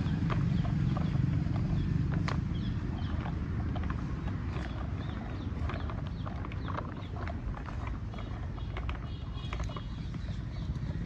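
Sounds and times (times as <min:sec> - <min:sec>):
plastic wheels crunching over grit: 0:00.0 - 0:11.0.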